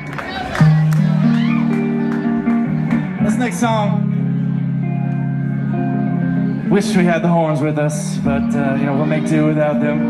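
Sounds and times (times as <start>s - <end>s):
band playing amplified guitar chords: 0.0s - 10.0s.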